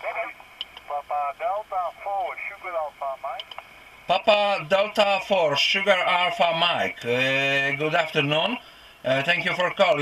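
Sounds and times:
thin radio speech from speaker: 0:00.0 - 0:03.5.

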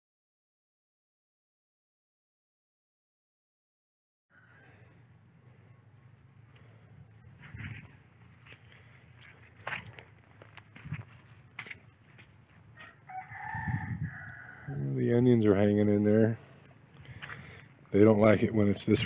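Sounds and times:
rooster crowing faintly: 0:04.3 - 0:06.0, 0:12.7 - 0:15.1.

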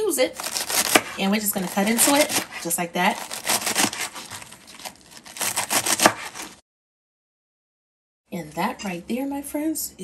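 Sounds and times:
knife slicing lettuce on board: 0:00.4 - 0:06.6.

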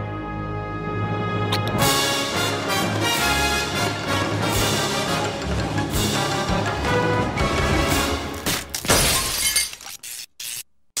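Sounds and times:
cartoon glass breaking crash: 0:08.4 - 0:10.2.

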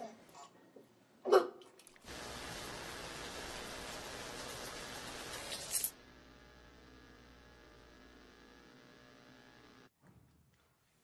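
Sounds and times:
steady hiss with low hum: 0:02.0 - 0:09.9.

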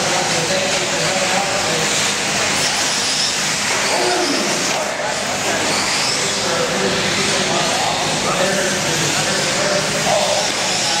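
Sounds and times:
babble of voices: 0:00.0 - 0:11.0
electric motors whining: 0:00.0 - 0:11.0.

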